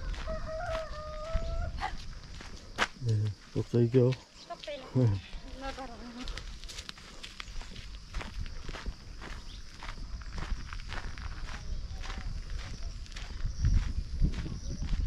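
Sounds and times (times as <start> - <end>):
footsteps on dirt road: 0.0 - 15.0.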